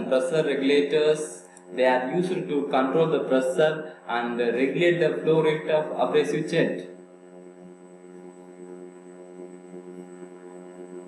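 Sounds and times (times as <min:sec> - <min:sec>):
faint high whine: 0:00.0 - 0:11.0
steady hum: 0:00.0 - 0:11.0.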